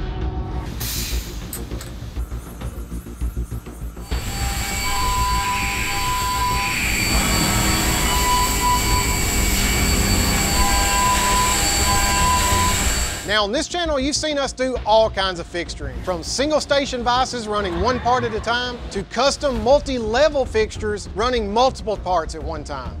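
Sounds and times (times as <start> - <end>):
music: 0.0 - 23.0
milling machine rushing with whine: 0.8 - 13.4.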